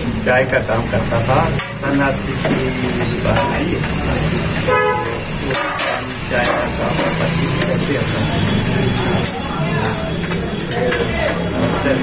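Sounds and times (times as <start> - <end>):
low rumble of traffic: 0.0 - 12.0
vehicle horn toot: 4.6 - 5.3.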